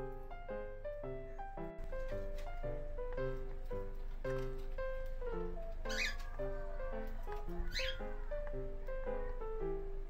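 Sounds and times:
gentle piano music: 0.0s - 10.0s
cockatiel squawking: 5.6s - 8.2s.

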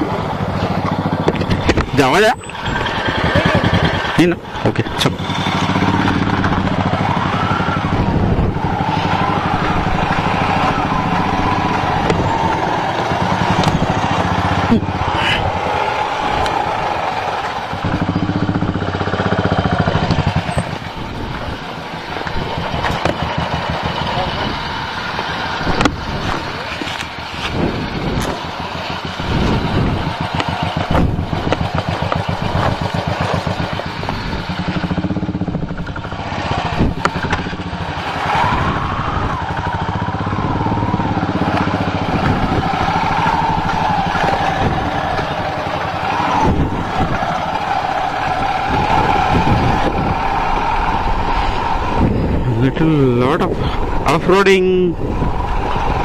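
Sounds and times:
motorcycle knocking and rattling: 0.0s - 52.7s
motorcycle engine running: 0.0s - 56.0s.

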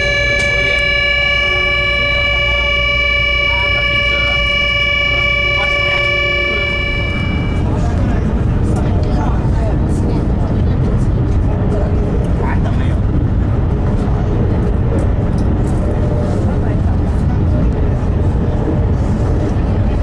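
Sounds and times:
indistinct voices murmuring: 0.0s - 10.8s
train rumble inside carriage: 0.0s - 20.0s.

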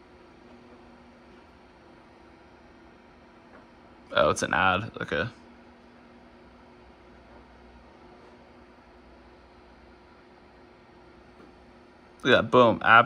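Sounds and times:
low even hum: 0.0s - 13.0s.

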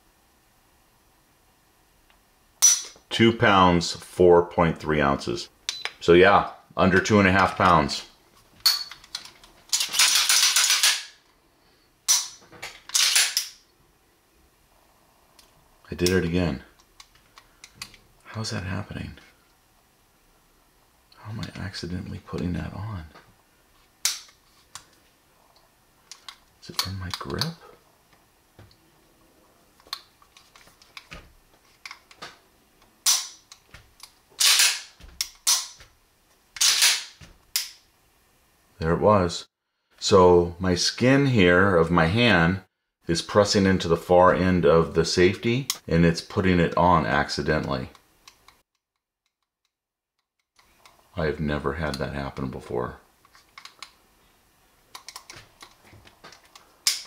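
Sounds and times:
pistol metal clicks and clacks: 8.8s - 11.2s, 12.1s - 13.6s, 33.0s - 35.8s, 54.9s - 57.0s
pistol metallic clicks: 33.0s - 35.8s
pistol slide rasping: 34.4s - 35.8s.

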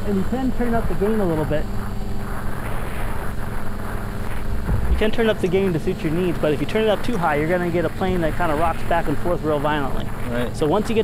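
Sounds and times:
model plane motors humming: 0.0s - 11.0s
wind rumbling on microphone: 0.0s - 11.0s.

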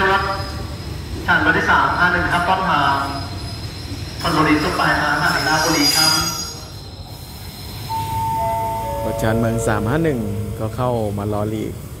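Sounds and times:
low rumble of standing train: 0.0s - 12.0s
descending three-note chime: 7.9s - 10.9s.

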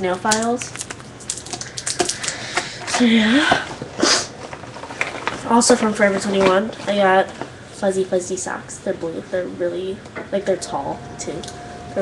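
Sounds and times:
items and packaging handled: 0.1s - 7.8s.

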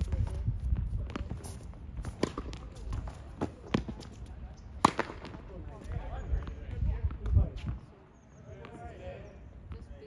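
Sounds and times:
tennis ball struck with racket: 1.1s - 4.1s, 4.8s - 5.4s.

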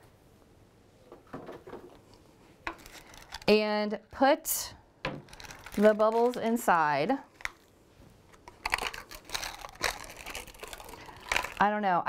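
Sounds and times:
plastic cup crinkling and clicking: 2.7s - 3.6s, 5.1s - 6.6s, 7.3s - 7.7s, 8.3s - 11.7s.

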